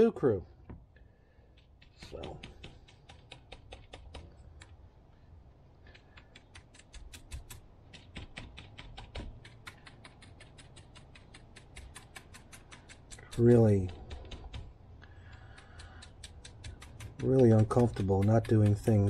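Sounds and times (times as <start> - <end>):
stiff paintbrush dabbing: 9.3 - 19.0.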